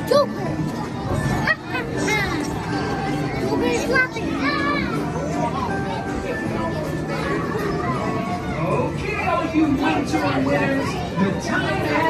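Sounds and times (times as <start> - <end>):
child's high-pitched voice: 0.0 - 0.5, 1.1 - 8.4
children's voices and chatter: 0.0 - 12.0.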